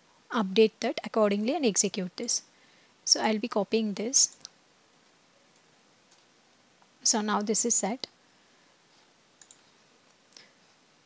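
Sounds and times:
computer mouse clicks: 4.3s - 4.6s, 5.5s - 6.3s, 9.4s - 10.5s.

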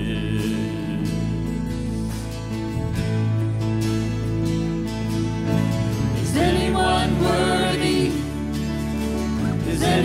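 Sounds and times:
worship band acoustic guitars: 0.0s - 10.0s.

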